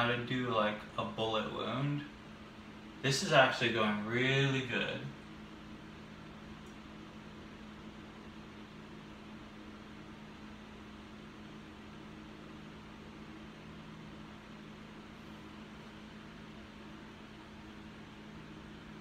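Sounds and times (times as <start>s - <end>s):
low constant hum: 0.0s - 19.0s
even hiss: 3.0s - 5.2s.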